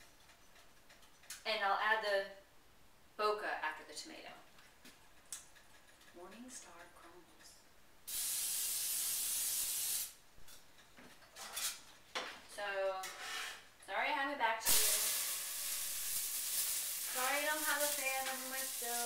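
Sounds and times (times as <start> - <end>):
vegetables sizzling in pan: 8.1 - 10.1, 14.6 - 19.0
aerosol spray hissing: 8.1 - 10.2, 14.7 - 19.0.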